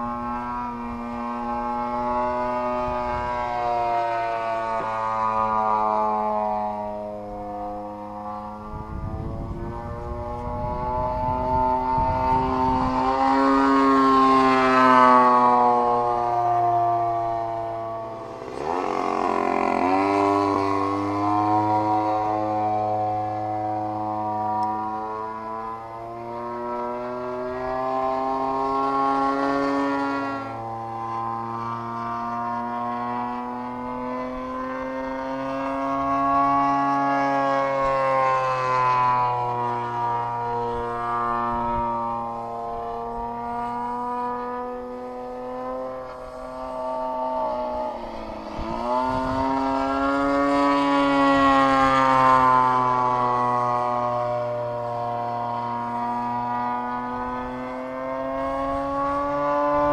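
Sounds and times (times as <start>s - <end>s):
model plane engine buzzing: 0.0s - 59.9s.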